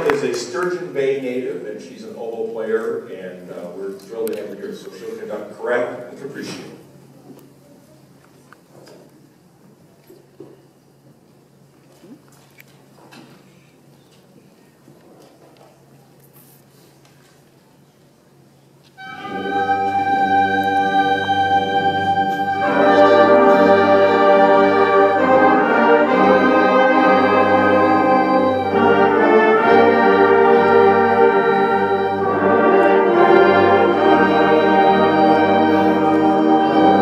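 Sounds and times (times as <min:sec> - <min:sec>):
concert band sustained chords: 0:19.0 - 0:37.0.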